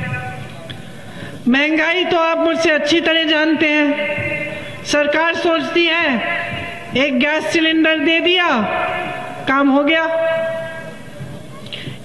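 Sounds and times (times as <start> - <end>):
woman's speech over public address: 0.0 - 0.7, 1.4 - 11.8.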